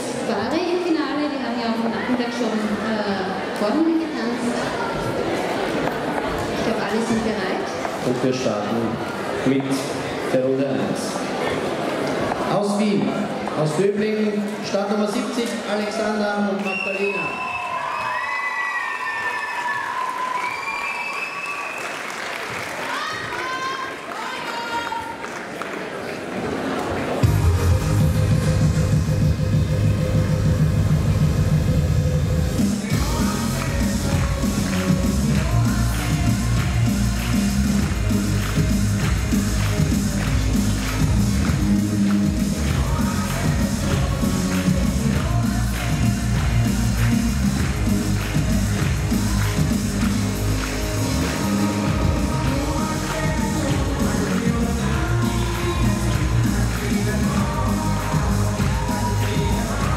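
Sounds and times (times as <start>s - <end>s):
audience clapping and cheering: 15.4s - 31.5s, 32.5s - 59.9s
rock and roll dance music: 27.2s - 59.9s.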